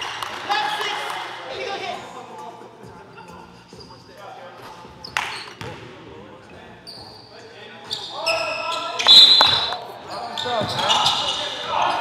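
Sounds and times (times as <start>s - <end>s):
players' voices: 0.3s - 12.0s
shoe squeal on gym floor: 3.7s - 5.8s, 6.7s - 12.0s.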